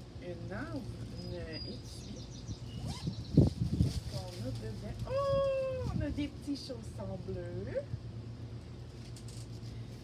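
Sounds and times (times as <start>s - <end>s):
paper wrapping crinkling: 3.5s - 5.7s.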